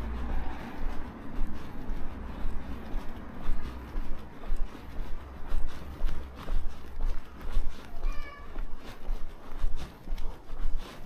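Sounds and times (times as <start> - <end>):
footsteps on pavement: 0.0 - 11.0.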